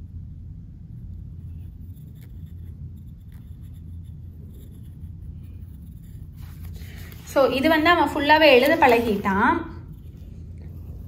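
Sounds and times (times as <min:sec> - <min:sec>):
steady low hum: 0:00.0 - 0:11.0
pencil scratching on paper: 0:01.1 - 0:11.0.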